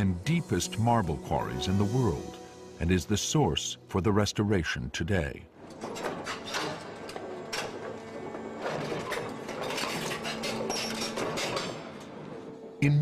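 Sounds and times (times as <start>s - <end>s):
quarry machinery clanking: 5.6s - 13.0s.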